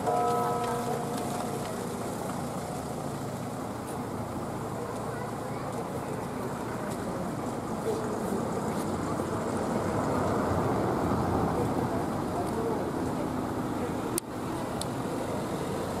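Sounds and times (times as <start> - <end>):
faint voices: 0.0 - 16.0
road traffic rumble: 0.0 - 16.0.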